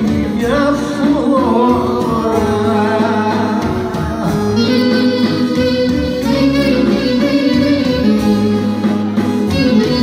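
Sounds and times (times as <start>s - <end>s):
folk band accompaniment: 0.0s - 10.0s
person singing: 0.0s - 10.0s
clarinet: 4.2s - 10.0s.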